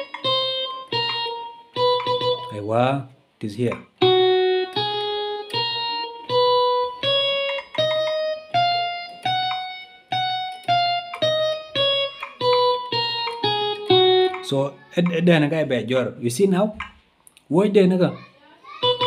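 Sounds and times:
electronic keyboard playing scale: 0:00.0 - 0:02.7, 0:04.0 - 0:15.2.

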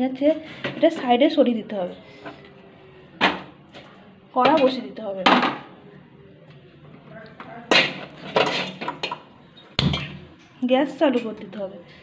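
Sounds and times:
pan knocking and scraping on grate: 0:07.7 - 0:09.2.

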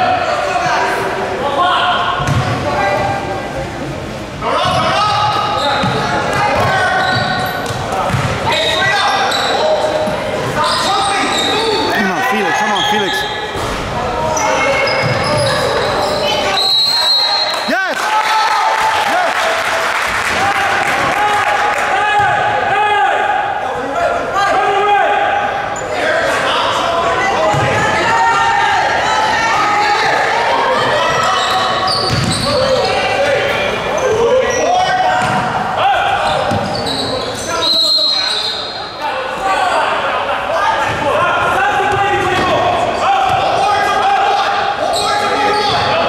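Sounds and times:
sneakers squeaking: 0:04.6 - 0:13.7, 0:14.3 - 0:17.5, 0:31.2 - 0:33.2, 0:34.0 - 0:35.5, 0:36.2 - 0:38.8
people calling out: 0:11.2 - 0:13.5.

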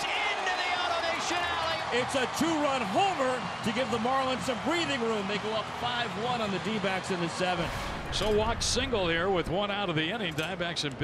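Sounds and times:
crowd cheering and shouting: 0:00.0 - 0:10.1.

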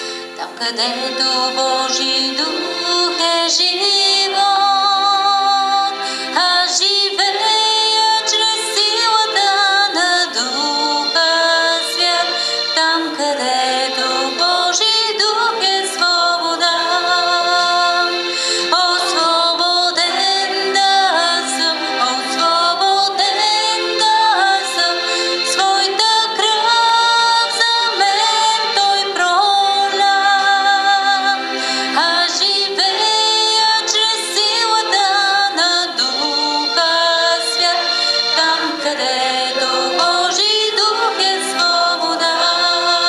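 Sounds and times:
woman singing worship song: 0:00.0 - 0:43.0.

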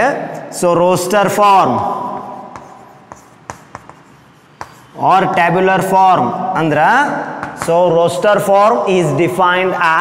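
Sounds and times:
chalk tapping and scratching on blackboard: 0:01.2 - 0:05.9, 0:07.4 - 0:08.2.

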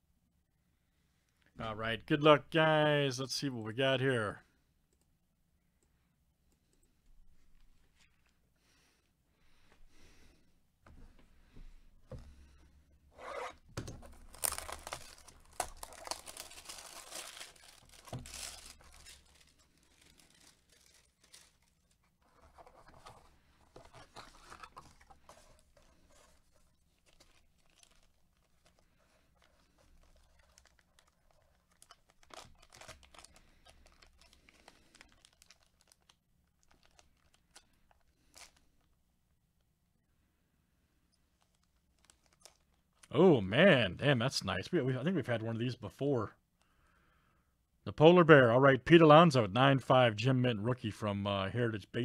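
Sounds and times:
packaging crinkling: 0:13.8 - 0:39.0, 0:41.4 - 0:43.1
plastic shrink-wrap tearing: 0:14.0 - 0:22.3, 0:24.0 - 0:38.7, 0:41.4 - 0:42.8.

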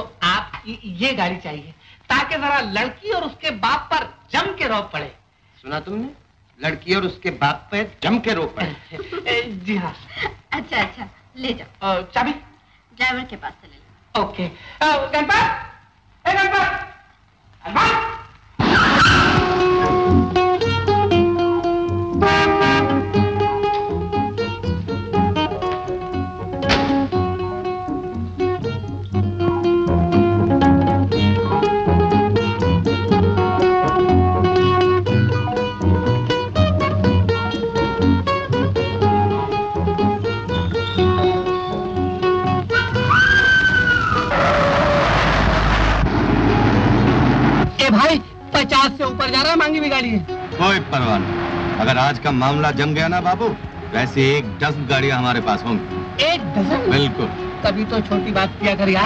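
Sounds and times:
man talking: 0:05.6 - 0:09.0, 0:47.8 - 0:55.9, 0:56.5 - 0:57.4
sustained music notes: 0:19.3 - 0:47.8, 0:48.4 - 0:59.0
road noise: 0:19.4 - 0:28.5, 0:36.3 - 0:47.8, 0:49.5 - 0:59.0
loud rush of noise: 0:43.1 - 0:47.9, 0:50.2 - 0:59.0
man speaking: 0:47.8 - 0:55.9, 0:56.5 - 0:57.4.

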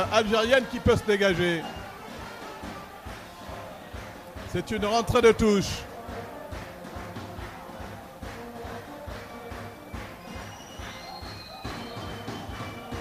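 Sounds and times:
drums beating steady rhythm: 0:00.0 - 0:13.0.

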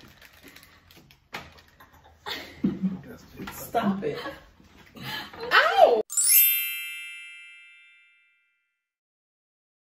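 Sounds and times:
bright chime ringing: 0:06.1 - 0:08.8.

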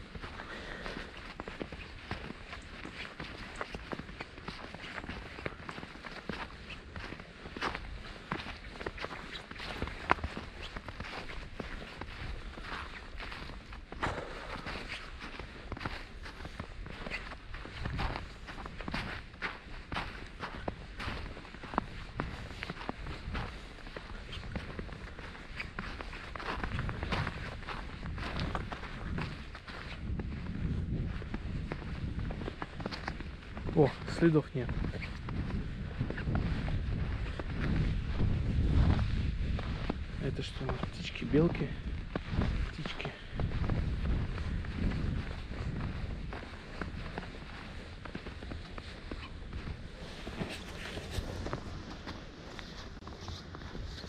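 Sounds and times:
footsteps crunching through snow: 0:00.0 - 0:54.0.

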